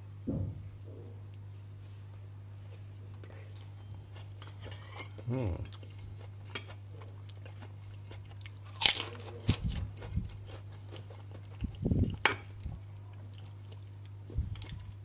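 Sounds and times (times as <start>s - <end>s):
soft chewing: 0.8s - 15.0s
crackers crunching: 2.1s - 15.0s.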